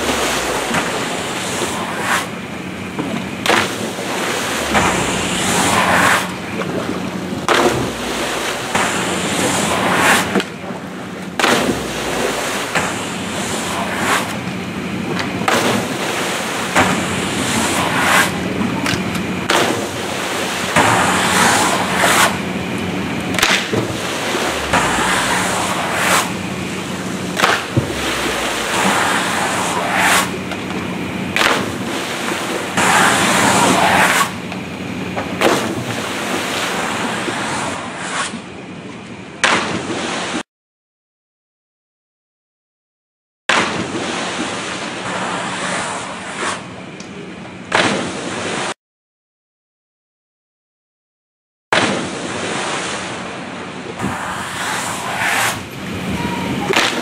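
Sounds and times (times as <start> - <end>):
sharp rushes of noise: 0.0 - 34.5, 54.0 - 57.0
water splashing and churning: 0.0 - 38.5, 43.5 - 46.8, 51.8 - 57.0
steady low hum: 0.0 - 39.0.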